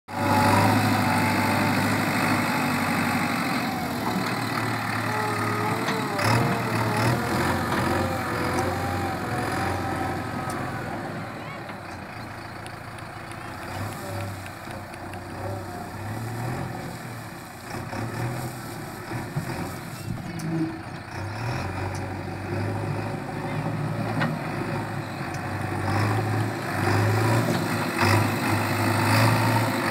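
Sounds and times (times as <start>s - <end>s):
diesel engine running: 0.1s - 29.9s.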